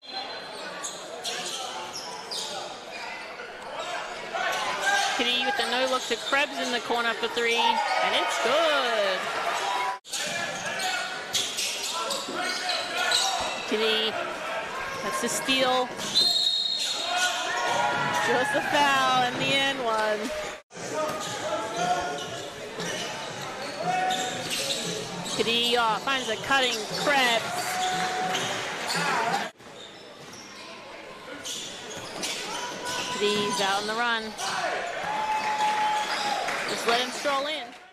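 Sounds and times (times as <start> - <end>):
court noise: 0.0 - 37.9
voices in a hall: 0.0 - 37.9.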